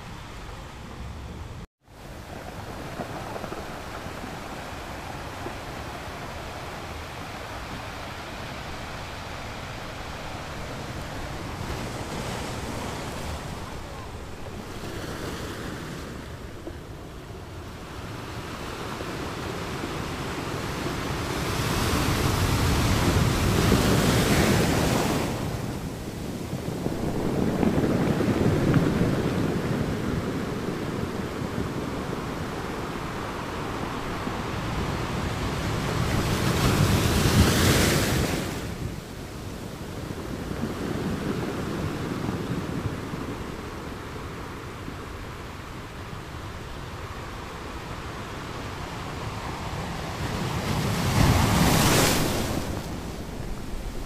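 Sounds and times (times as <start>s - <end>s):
big waves crashing: 0.0s - 54.0s
ocean surf breaking on beach: 1.9s - 54.0s.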